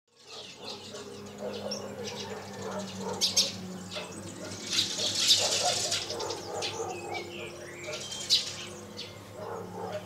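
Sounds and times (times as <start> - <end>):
small birds chirping: 0.1 - 10.0.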